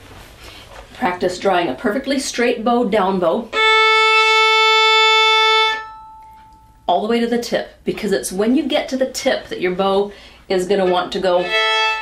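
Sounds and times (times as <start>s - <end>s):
violin bowed held note: 3.5s - 6.8s, 10.9s - 12.0s.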